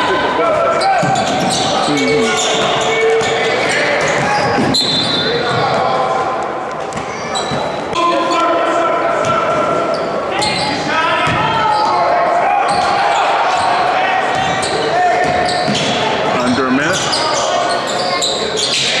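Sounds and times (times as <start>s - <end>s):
voices calling out: 0.0s - 19.0s.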